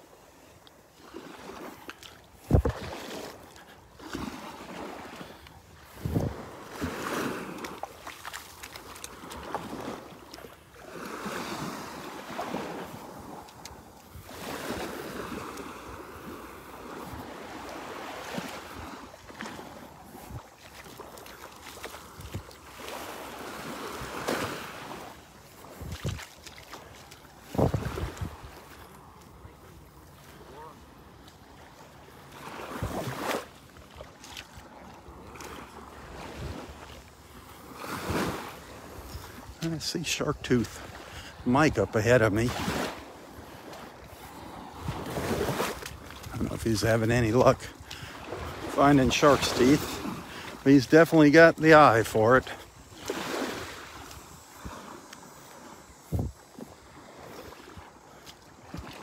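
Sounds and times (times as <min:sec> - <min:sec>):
small waves lapping on shore: 0:00.0 - 0:59.0
wind buffeting microphone: 0:02.4 - 0:02.9, 0:05.8 - 0:07.5, 0:25.6 - 0:26.3, 0:27.4 - 0:28.7, 0:55.9 - 0:56.5.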